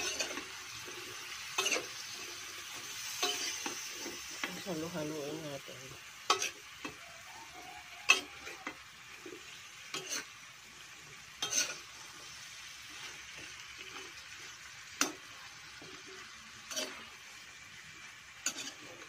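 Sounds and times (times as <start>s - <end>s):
food sizzling in a wok: 0.0s - 19.0s
tongs clacking against pan: 1.5s - 1.9s, 3.1s - 3.8s, 6.3s - 7.0s, 8.0s - 10.3s, 11.4s - 11.8s, 15.0s - 16.0s, 18.4s - 19.0s.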